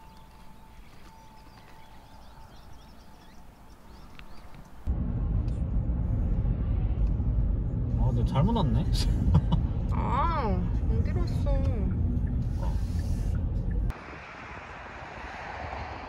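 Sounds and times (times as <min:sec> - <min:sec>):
car engine and tyre rumble: 0:00.0 - 0:16.0.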